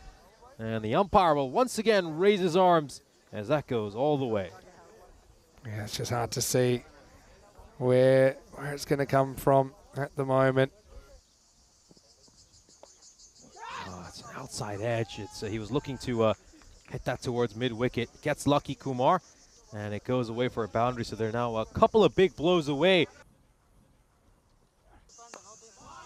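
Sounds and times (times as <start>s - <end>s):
insect chirring: 0.0s - 23.3s, 23.9s - 26.0s
faint distant voices: 1.8s - 12.5s.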